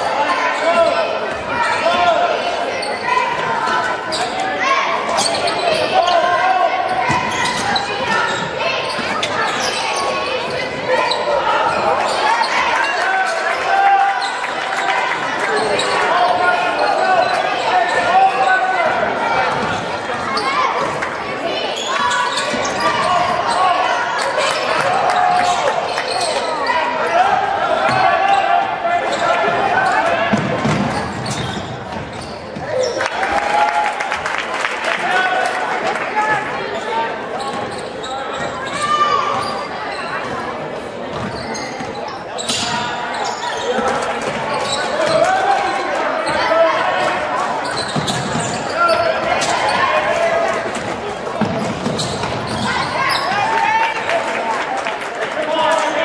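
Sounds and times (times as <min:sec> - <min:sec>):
people talking and calling out: 0:00.0 - 0:56.0.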